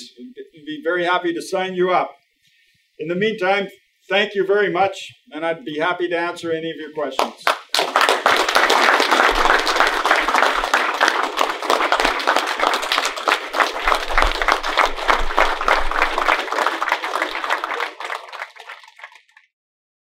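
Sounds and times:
audience applauding: 7.4 - 19.5.

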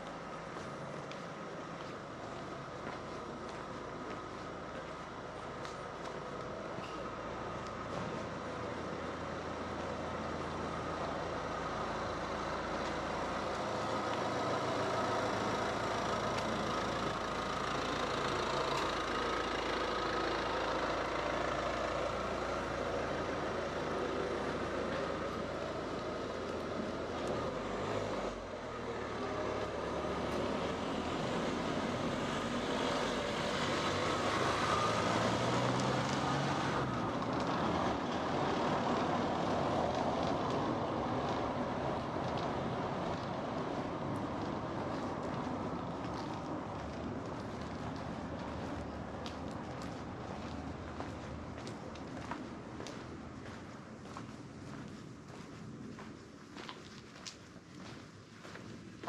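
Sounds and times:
vehicle engine running: 8.7 - 52.4.

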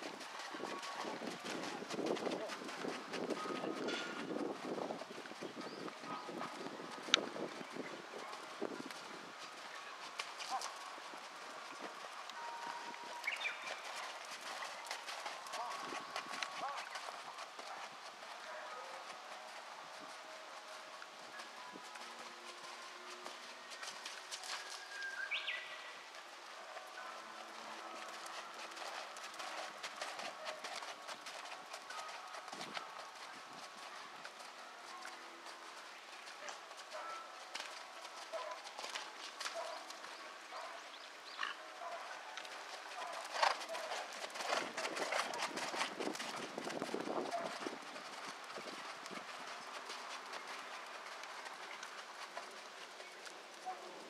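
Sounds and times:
horse hoofbeats on soft dirt: 0.0 - 54.0.

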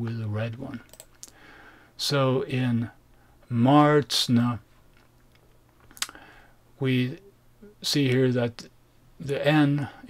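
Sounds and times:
person speaking: 0.0 - 1.2, 6.8 - 10.0.

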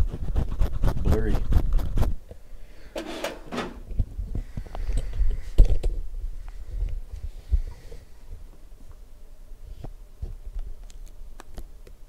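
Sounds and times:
sliding rubbing sound: 0.0 - 2.2, 2.9 - 3.9.

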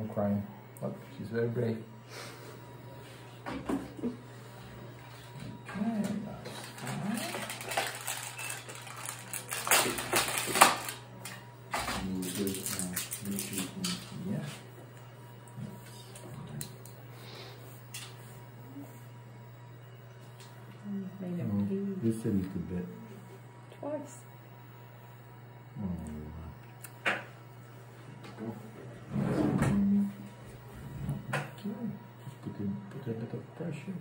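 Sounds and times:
steady low hum: 0.0 - 34.0
objects rustling and clattering: 6.4 - 14.6.

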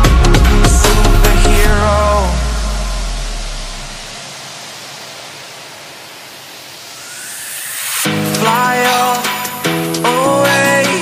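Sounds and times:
electronic music track: 0.0 - 4.3, 6.7 - 11.0
steady hiss: 0.9 - 11.0
rising noise sweep: 1.6 - 10.6.

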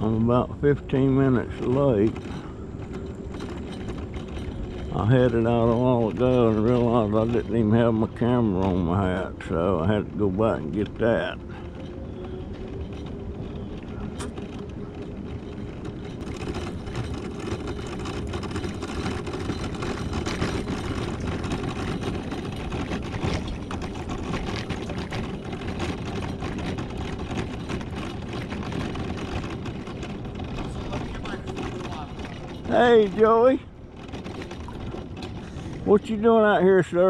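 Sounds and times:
scooter motor whine: 0.0 - 37.0
scooter rattles and clicks: 0.0 - 37.0
tyres rumbling on asphalt: 0.0 - 37.0.

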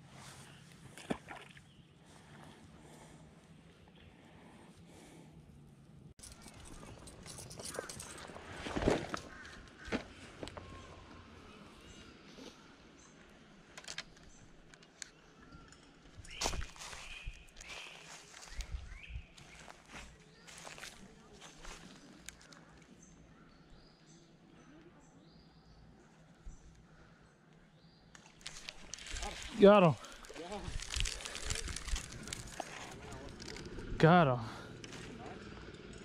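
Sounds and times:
fishing gear knocking and rustling: 6.2 - 10.5, 28.2 - 34.0
footsteps on dry leaves: 16.3 - 18.8, 19.4 - 22.0, 28.4 - 33.7.

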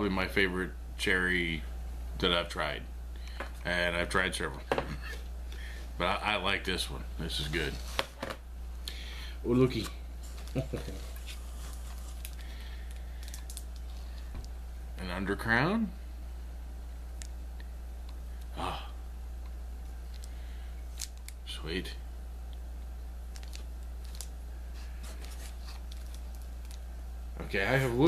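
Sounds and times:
low electrical hum: 0.0 - 28.0
hands handling a cigar: 9.8 - 14.6, 22.8 - 26.9
wrapper crinkling and rustling: 10.3 - 14.0, 23.3 - 26.8.

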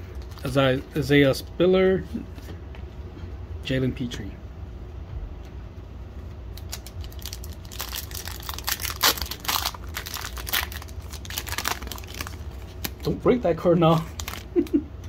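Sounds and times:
foil wrapper crinkling and tearing: 0.1 - 0.8, 6.5 - 14.8.

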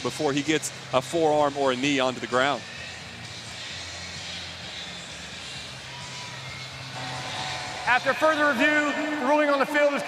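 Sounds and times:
man speaking over loudspeaker: 0.0 - 2.6, 7.0 - 10.0
stadium crowd murmur: 4.8 - 10.0.

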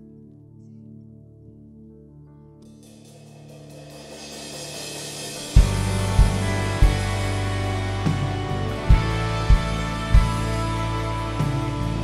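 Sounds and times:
sustained bass: 3.5 - 12.0
guitars: 4.9 - 12.0
kick drum beats: 5.6 - 7.5, 8.8 - 10.8.

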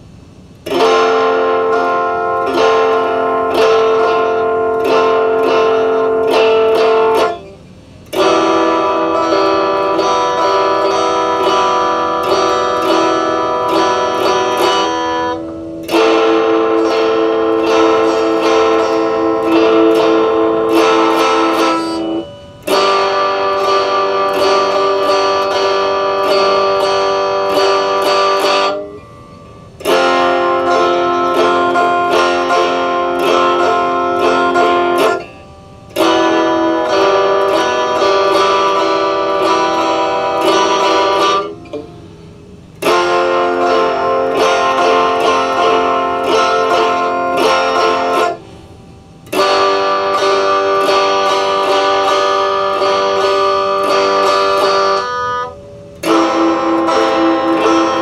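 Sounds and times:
electric guitar playing: 0.0 - 58.0.

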